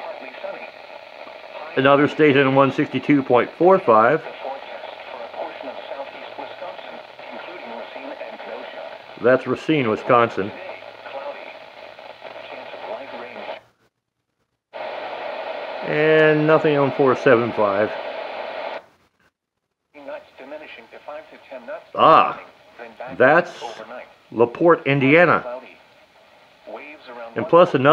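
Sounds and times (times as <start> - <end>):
faint radio broadcast voice: 0.0 - 13.7, 14.8 - 18.8, 20.0 - 27.9
static hiss: 0.0 - 27.9.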